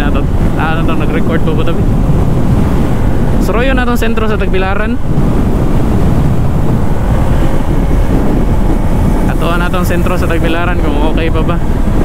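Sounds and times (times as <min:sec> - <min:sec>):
motorcycle running: 0:00.0 - 0:12.0
road noise: 0:00.0 - 0:12.0
wind buffeting on microphone: 0:00.0 - 0:12.0.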